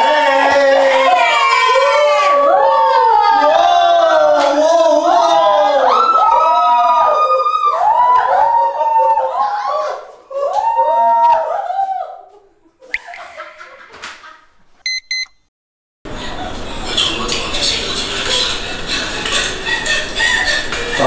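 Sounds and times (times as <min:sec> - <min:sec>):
short high beeps: 0:14.8 - 0:15.4.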